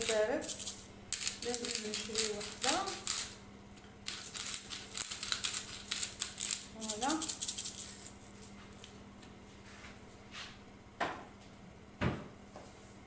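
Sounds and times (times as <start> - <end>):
shaker jar rattling: 0.0 - 3.4, 4.1 - 8.2.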